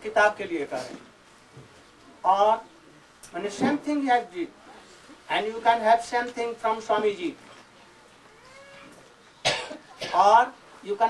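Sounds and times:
short sharp cough: 9.4 - 10.3.

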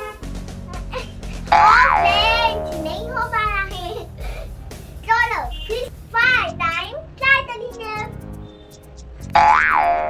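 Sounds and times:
background music with low notes: 0.0 - 10.0
cartoon boing sound effect: 1.9 - 3.0.

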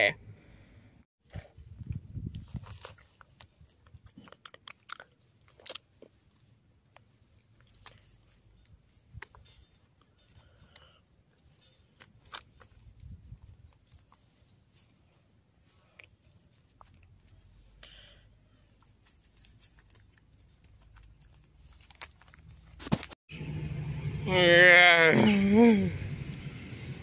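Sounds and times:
plastic toy clicking in grass: 6.9 - 14.3.

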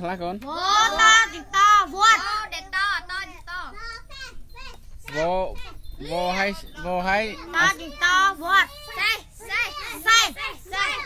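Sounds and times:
young children speaking: 0.4 - 11.0.

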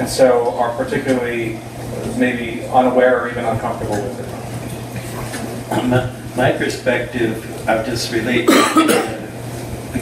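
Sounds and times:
steady low hum: 0.0 - 10.0
man coughing: 5.7 - 6.1, 8.5 - 9.2.

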